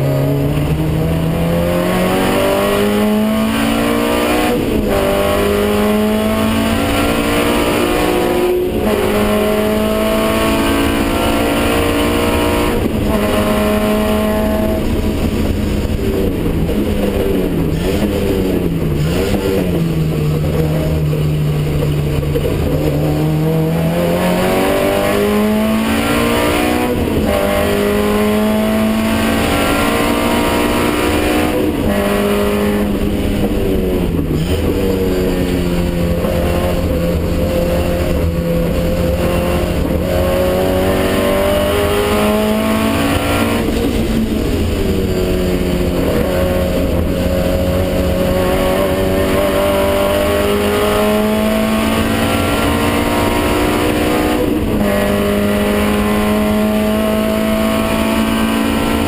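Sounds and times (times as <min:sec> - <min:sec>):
racing car engine revving: 0:00.0 - 0:59.0
road and wind noise: 0:00.0 - 0:59.0.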